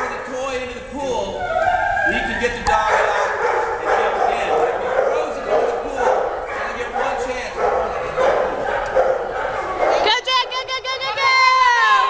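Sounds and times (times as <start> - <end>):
dog barking: 2.8 - 10.2.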